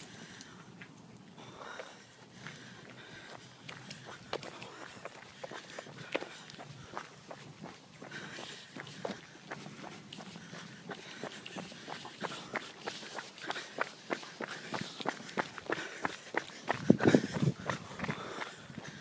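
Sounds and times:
footsteps on asphalt: 0.0 - 19.0.

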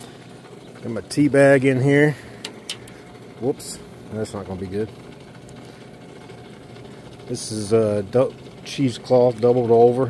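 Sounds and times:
liquid churning and bubbling: 0.0 - 10.0.

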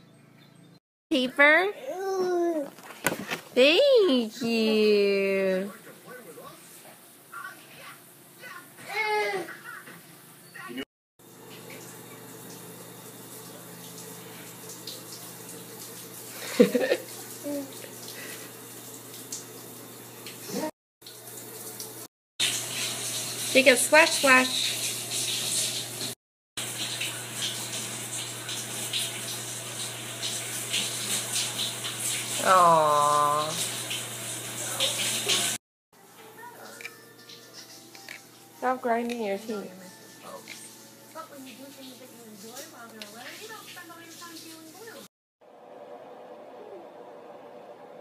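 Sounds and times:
water running from tap into bathtub: 11.2 - 45.1.

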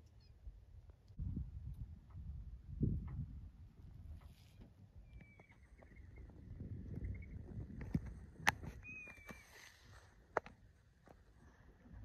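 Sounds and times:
faint thin whistled notes: 5.0 - 6.3, 8.8 - 9.7.

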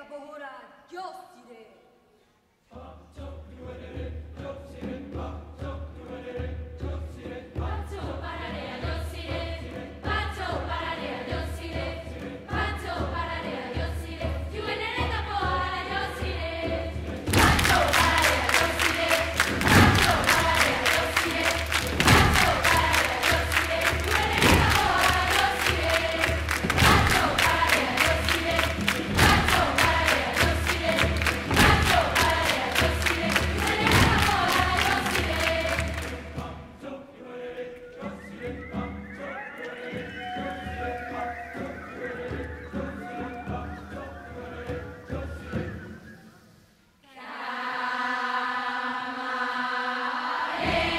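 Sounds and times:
choir singing and chanting: 2.6 - 50.9
percussion hits: 3.9 - 36.8, 50.5 - 50.9
hand clapping: 17.3 - 36.4
high voices gliding: 37.9 - 46.7.

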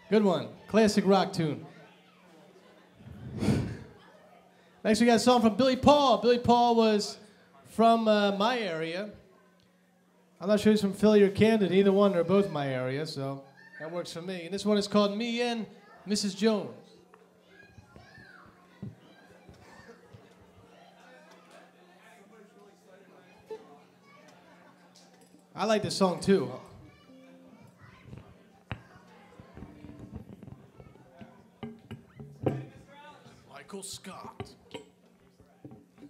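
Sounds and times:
faint voices in a hall: 0.0 - 36.0.

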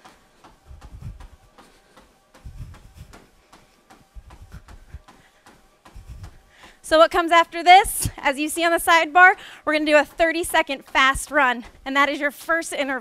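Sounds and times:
feet thudding on treadmill belt: 0.0 - 13.0.

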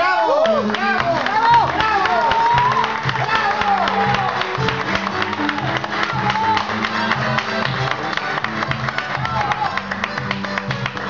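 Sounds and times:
keyboard: 0.0 - 11.0
acoustic guitar melody: 2.9 - 11.0.

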